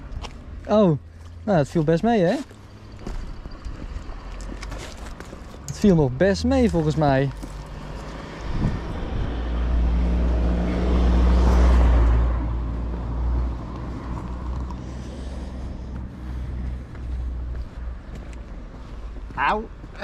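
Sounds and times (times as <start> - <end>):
car driving past: 5.6 - 17.6.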